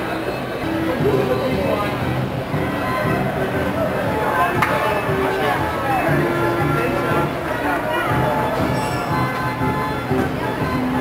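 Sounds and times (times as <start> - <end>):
carousel music: 0.0 - 11.0.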